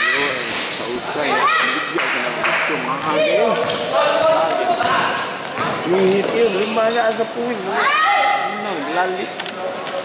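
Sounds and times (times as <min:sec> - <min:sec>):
voices calling out in echoing court: 0:00.0 - 0:10.0
basketball bouncing: 0:03.0 - 0:05.8.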